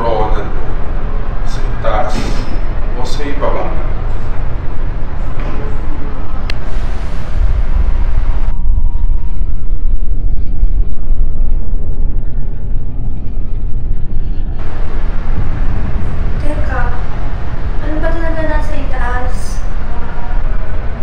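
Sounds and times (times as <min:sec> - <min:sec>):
loud low rumble: 0:00.0 - 0:21.0
woman's voice: 0:16.4 - 0:17.2, 0:17.8 - 0:19.8.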